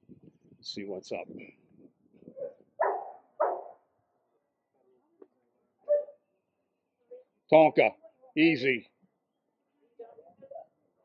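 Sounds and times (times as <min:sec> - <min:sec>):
dog barking: 0:02.4 - 0:03.8, 0:05.9 - 0:06.2.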